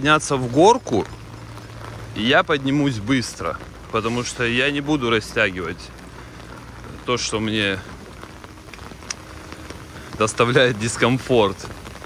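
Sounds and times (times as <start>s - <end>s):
heavy rain on flooded paving: 0.0s - 12.0s.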